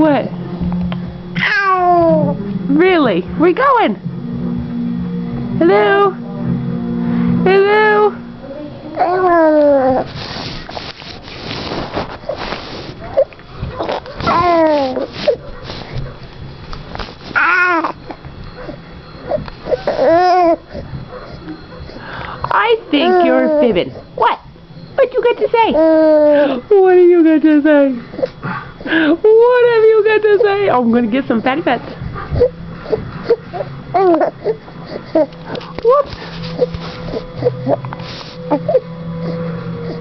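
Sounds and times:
baby cooing: 1.4 - 2.4, 8.4 - 10.2, 14.2 - 15.4, 17.3 - 18.0, 19.3 - 20.9, 22.9 - 23.9, 25.7 - 26.5, 32.4 - 37.9.

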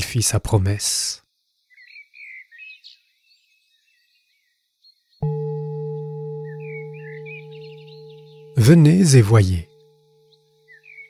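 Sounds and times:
faint bird chirps: 0.7 - 11.0
singing bowl ringing: 5.2 - 10.8.

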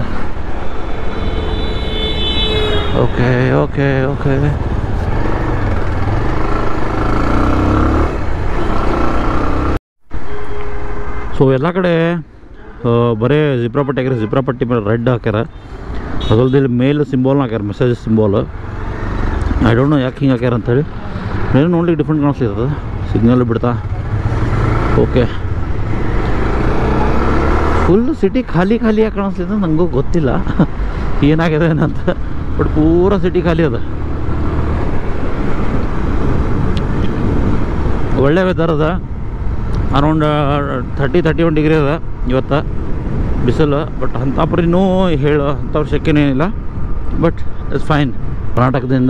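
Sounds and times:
wind and road noise: 0.0 - 49.0
motorcycle engine: 3.9 - 9.8, 22.8 - 28.0
wind rumble on microphone: 34.2 - 40.1.

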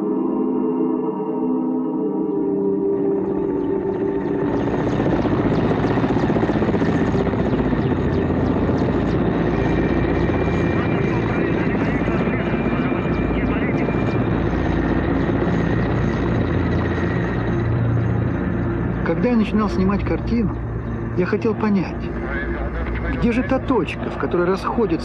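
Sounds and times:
helicopter engine and rotor noise: 0.0 - 25.0.

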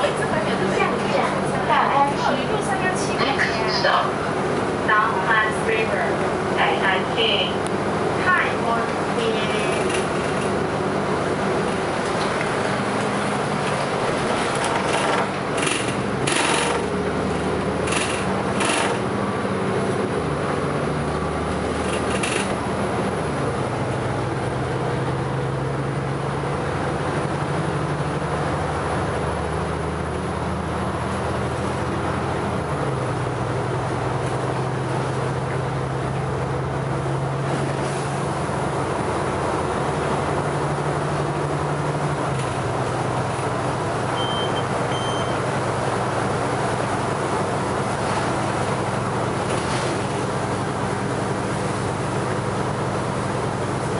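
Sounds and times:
bus engine drone: 0.0 - 53.9
road noise: 0.0 - 53.9.

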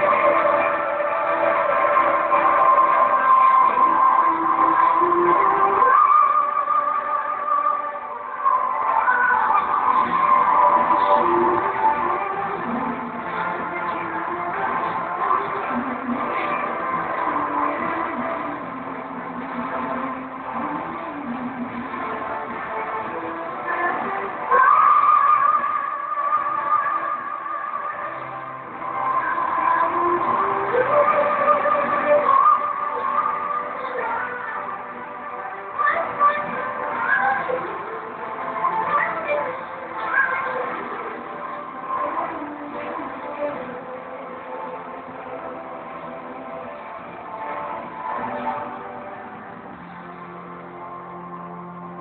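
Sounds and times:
backing track music: 0.0 - 52.0
person singing amplified: 0.0 - 52.0.

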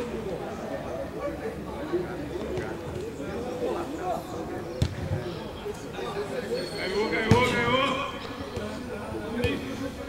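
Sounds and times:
players calling: 3.8 - 10.0
football kick thud: 4.8 - 5.2.

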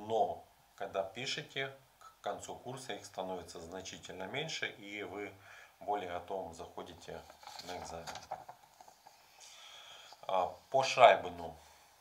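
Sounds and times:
man talking: 0.0 - 8.3, 10.2 - 11.6
faint soft breath: 5.3 - 5.8, 9.0 - 10.8, 11.5 - 12.0.

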